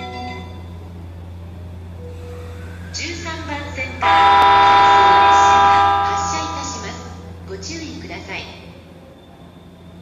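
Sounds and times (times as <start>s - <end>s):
train horn chord: 4.0s - 7.2s.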